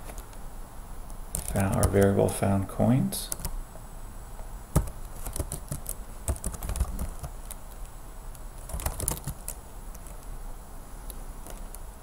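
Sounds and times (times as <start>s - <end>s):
computer keyboard typing: 1.3s - 2.2s, 3.3s - 3.5s, 4.7s - 7.9s, 8.6s - 10.3s.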